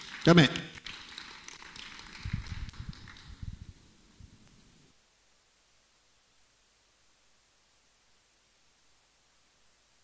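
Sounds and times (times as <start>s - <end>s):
congregation clapping: 0.0s - 3.4s.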